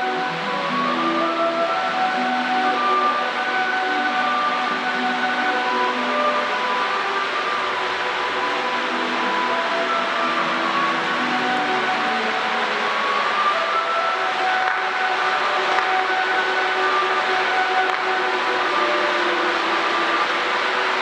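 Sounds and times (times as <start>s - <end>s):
fountain fireworks hissing: 0.0s - 21.0s
music of held melodic notes: 0.0s - 21.0s.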